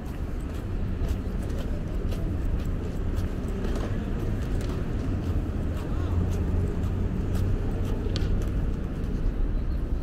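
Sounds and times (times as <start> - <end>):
road traffic hum: 0.0 - 10.0
urban noise: 0.0 - 10.0.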